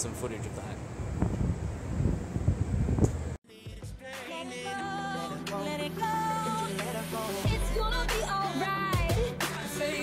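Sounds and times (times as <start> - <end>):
wind buffeting microphone: 0.8 - 3.4.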